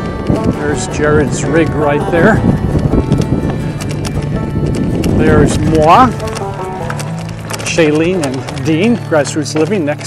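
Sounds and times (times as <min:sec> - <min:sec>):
background music: 0:00.0 - 0:10.0
bike tyres crunching on gravel: 0:00.0 - 0:10.0.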